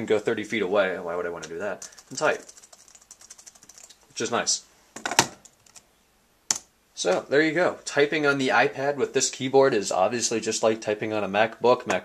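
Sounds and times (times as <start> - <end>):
keyboard keys clicking: 1.8 - 4.0.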